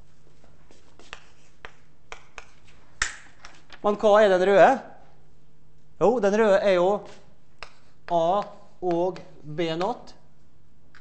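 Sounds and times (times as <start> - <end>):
low room hum: 0.0 - 11.0
chalk tapping and scratching on board: 0.7 - 2.8, 7.0 - 9.9.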